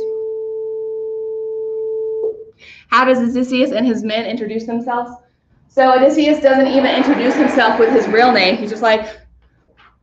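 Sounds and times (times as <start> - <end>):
short breath: 2.6 - 2.9
woman speaking: 2.9 - 9.2.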